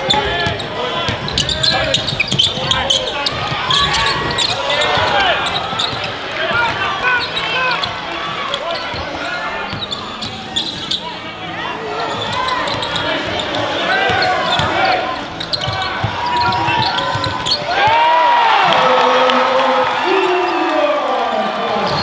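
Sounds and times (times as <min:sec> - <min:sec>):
players and spectators shouting: 0:00.0 - 0:22.0.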